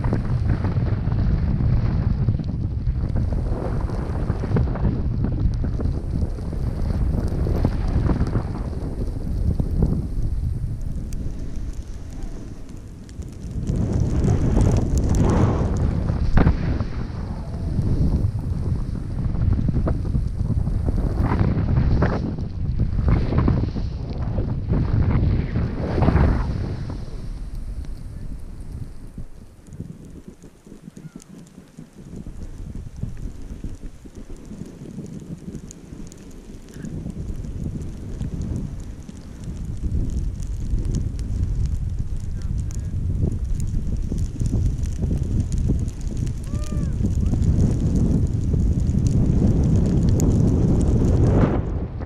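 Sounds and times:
skis carving and scraping snow: 0.0 - 52.0
wind rushing over microphone: 0.0 - 52.0.

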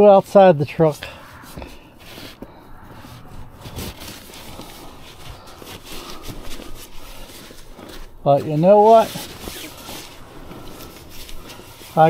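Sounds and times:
fabric rustling: 1.1 - 12.0.

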